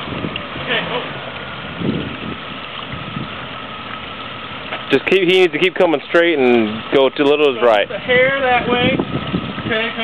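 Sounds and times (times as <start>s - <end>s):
engine running at low revs: 0.0s - 7.0s.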